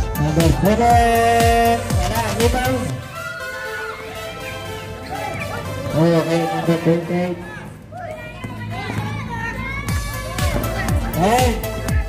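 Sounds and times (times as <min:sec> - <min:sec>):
music: 0:00.0 - 0:07.8, 0:08.4 - 0:12.0
high-pitched shouting and cheering: 0:02.9 - 0:10.6.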